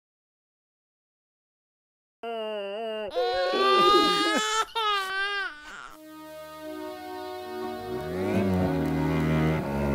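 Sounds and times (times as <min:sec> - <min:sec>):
high-pitched voice wailing: 0:02.8 - 0:05.4.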